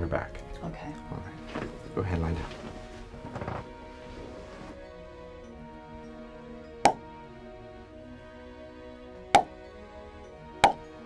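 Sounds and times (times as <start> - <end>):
background music: 0.0 - 11.0
back cracking: 1.4 - 4.0.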